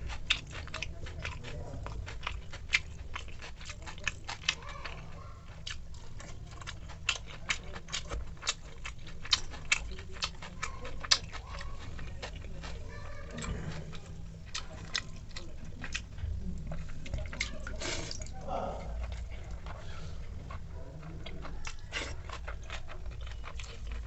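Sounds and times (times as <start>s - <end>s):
chewing mouth clicks: 0.0s - 24.0s.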